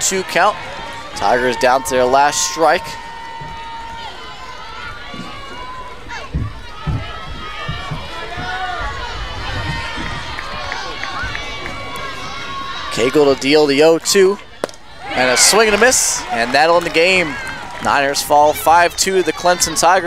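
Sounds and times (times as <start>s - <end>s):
crowd voices shouting and chattering: 0.0s - 20.0s
dull thumps: 5.0s - 11.8s.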